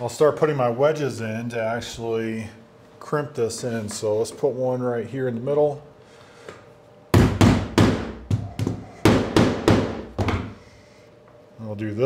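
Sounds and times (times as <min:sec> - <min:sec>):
wedges tapped in sharp knocks: 0:07.2 - 0:10.6.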